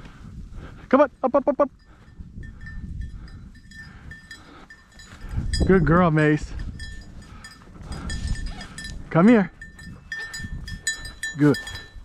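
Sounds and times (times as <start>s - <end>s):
small dog bell ringing: 1.8s - 5.9s, 6.5s - 12.0s.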